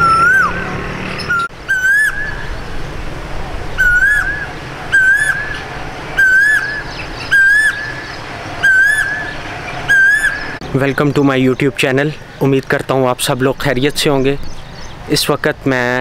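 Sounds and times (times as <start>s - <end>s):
bird calling: 0.0s - 2.9s, 3.7s - 15.5s.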